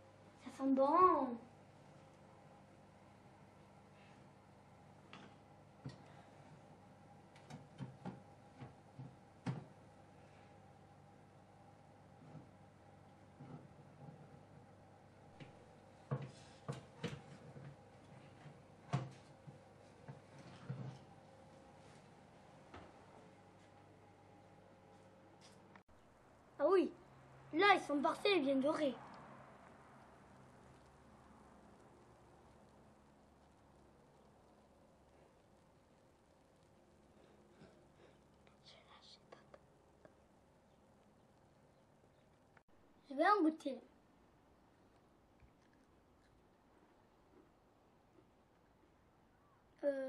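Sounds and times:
faint steady hum: 0.0 - 50.0
faint whisper: 37.5 - 40.2.

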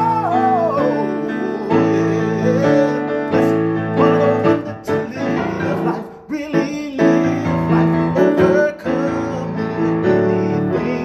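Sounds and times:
grand piano chords: 0.0 - 11.0
man singing: 0.0 - 11.0.

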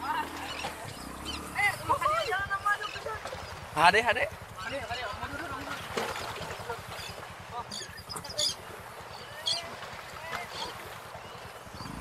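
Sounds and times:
low rapid pulsing rumble: 10.8 - 12.0.

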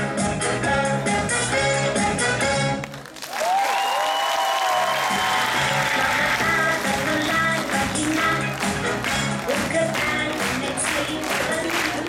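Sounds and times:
audience applause: 2.8 - 12.0
crowd cheering: 3.1 - 8.7
upbeat dance music: 5.0 - 12.0.

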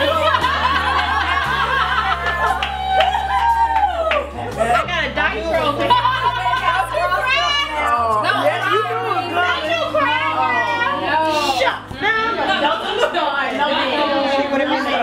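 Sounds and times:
soft background music: 0.0 - 15.0
women talking and laughing: 0.0 - 15.0.

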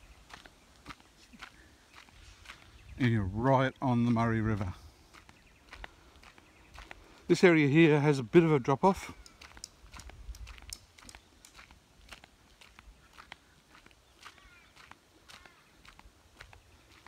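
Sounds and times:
footsteps crunching on dirt: 0.0 - 17.0
faint high calls: 14.3 - 15.8.

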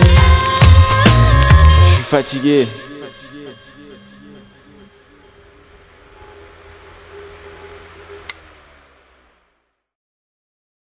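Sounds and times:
steady hissing drone: 0.9 - 9.6
low hum: 2.8 - 9.8.

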